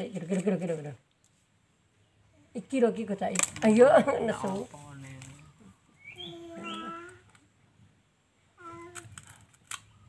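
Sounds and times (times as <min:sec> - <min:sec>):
baby vocalising: 0:08.6 - 0:09.1.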